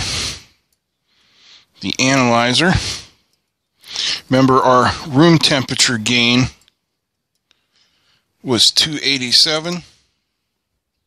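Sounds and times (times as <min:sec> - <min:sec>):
faint hiss: 0:00.0 - 0:11.0
man speaking: 0:01.8 - 0:03.1, 0:03.9 - 0:06.7, 0:08.4 - 0:10.0.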